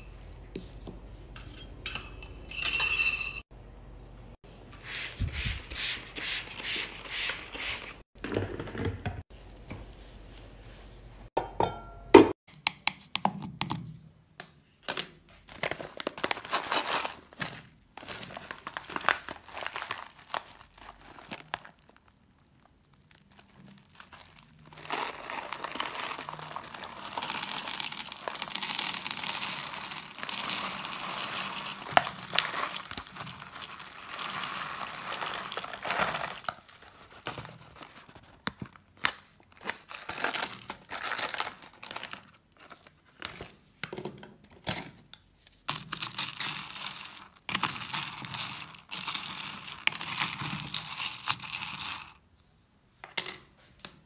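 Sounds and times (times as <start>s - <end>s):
plastic bag crinkling: 15.5s - 43.0s
beads rattling into metal pot: 24.2s - 37.3s, 45.8s - 52.2s.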